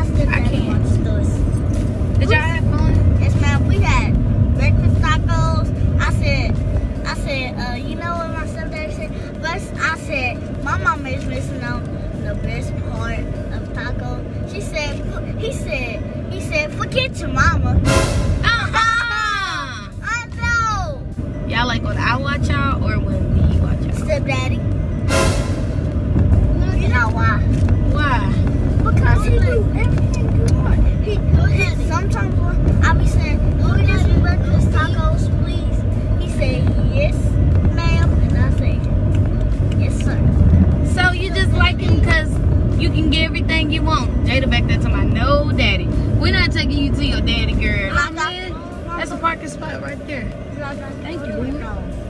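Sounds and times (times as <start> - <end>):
child's voice: 0.0 - 1.6, 18.4 - 21.1, 26.6 - 38.9
car road and engine rumble: 0.0 - 52.0.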